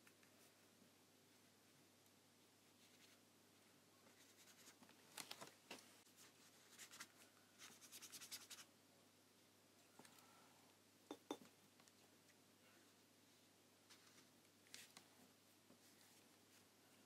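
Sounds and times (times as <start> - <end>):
brush scratching on paper: 6.1 - 8.7.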